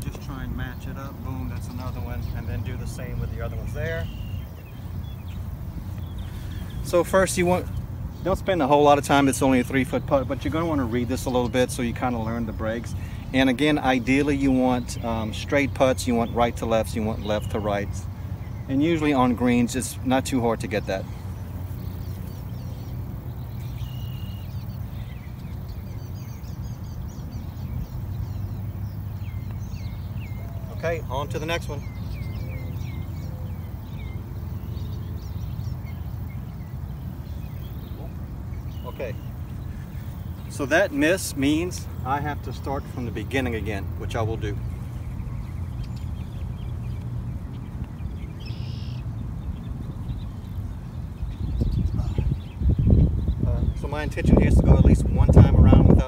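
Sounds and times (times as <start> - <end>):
birds chirping and whistling: 0.0 - 56.0
wind buffeting microphone: 0.0 - 56.0.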